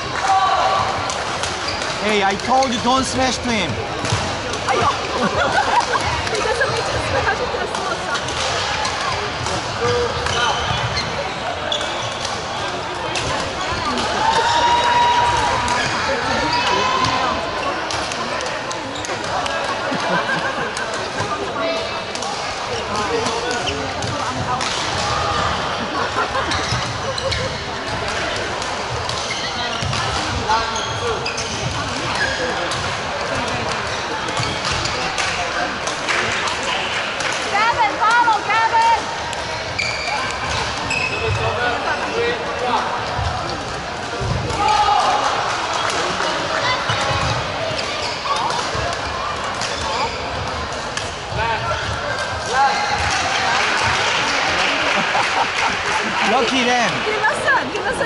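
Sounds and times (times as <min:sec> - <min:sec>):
spectators chatting: 0:00.0 - 0:58.0.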